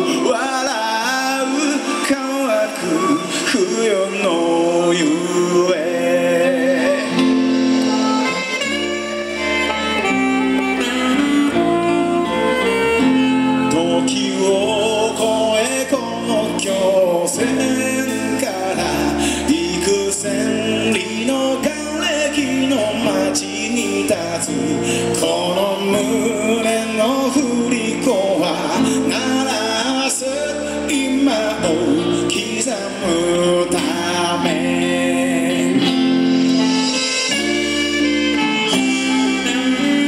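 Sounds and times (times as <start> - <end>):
acoustic guitar: 0.0 - 40.0
electric bass line: 0.0 - 40.0
saxophone melody: 5.2 - 40.0.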